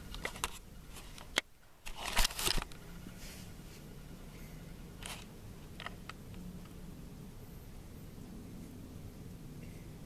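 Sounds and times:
camera rustling and knocks: 0.2 - 2.8.

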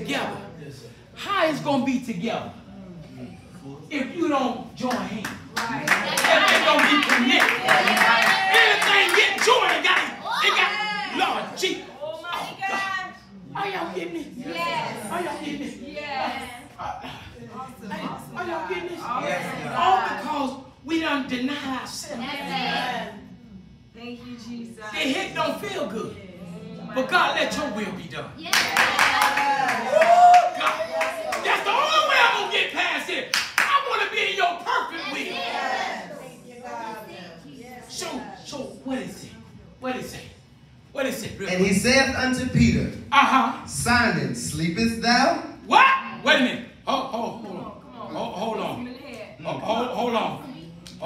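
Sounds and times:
congregation clapping in rhythm: 4.8 - 10.1, 28.5 - 31.8, 33.2 - 34.2
hands clapping quickly: 33.3 - 33.8.

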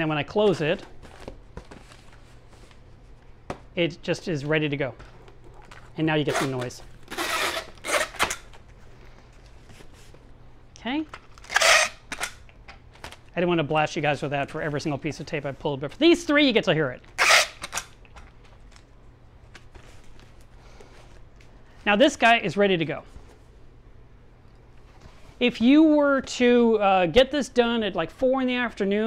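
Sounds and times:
man speaking: 0.0 - 0.9, 3.8 - 5.0, 6.0 - 6.9, 13.4 - 17.0, 21.8 - 23.1, 25.4 - 29.0
packing tape ripping: 5.6 - 8.6, 11.2 - 13.2, 17.1 - 18.0.

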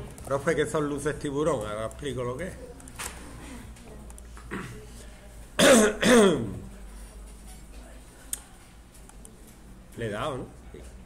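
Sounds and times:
person clearing throat: 4.5 - 4.9, 5.6 - 6.7
person coughing: 4.5 - 4.9, 5.6 - 6.6.

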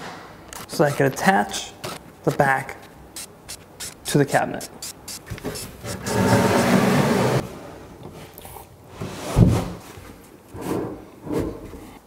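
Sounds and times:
cordless drill driving screw: 3.2 - 7.1.

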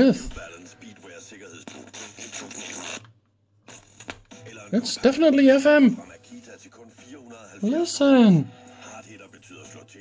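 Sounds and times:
radio broadcast from loudspeaker: 0.0 - 3.0, 3.7 - 10.0.

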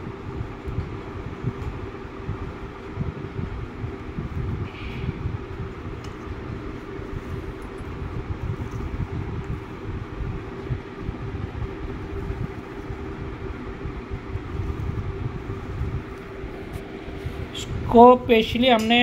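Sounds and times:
machine rumbling and humming: 0.0 - 19.0.

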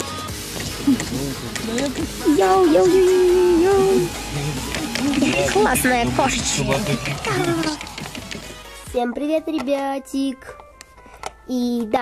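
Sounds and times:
background music: 0.0 - 12.0
girl speaking: 1.7 - 4.1, 8.9 - 10.5, 11.5 - 12.0.

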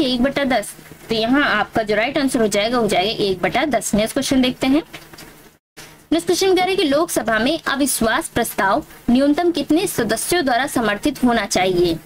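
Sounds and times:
woman speaking: 0.0 - 4.9, 6.1 - 12.0
faint background noise: 0.0 - 12.0.

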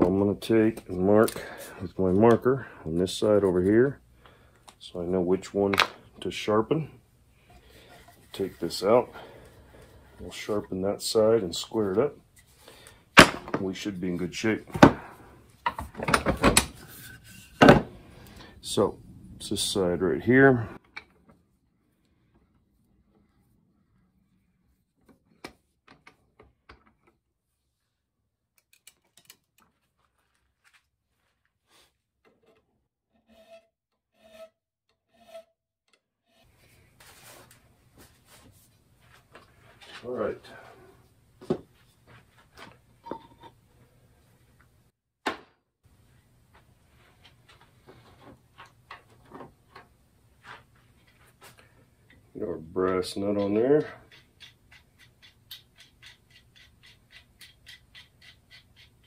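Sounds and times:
hand file strokes on steel: 33.2 - 35.5.

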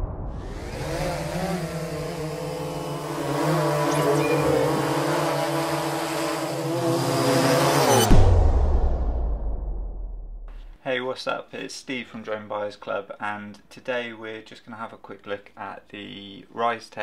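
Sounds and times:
drone propellers humming: 0.0 - 7.8.

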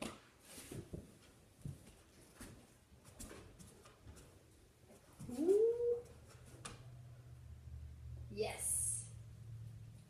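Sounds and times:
dog whining: 5.2 - 6.2.

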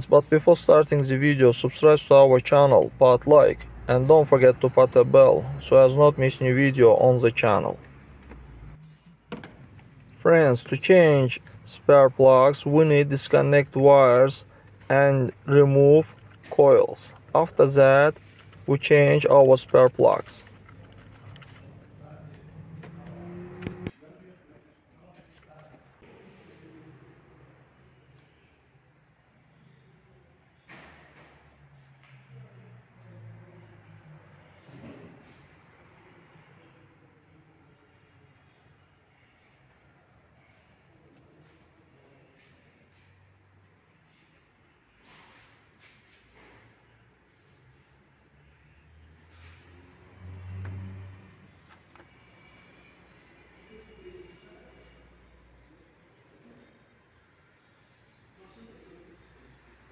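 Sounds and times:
passing vehicle rumble: 21.8 - 24.0, 49.0 - 53.6.

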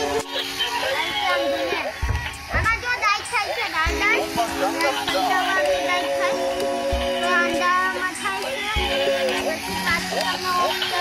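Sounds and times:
high chirpy sung voice: 0.0 - 2.0, 2.6 - 11.0
steady electronic notes: 0.0 - 11.0.

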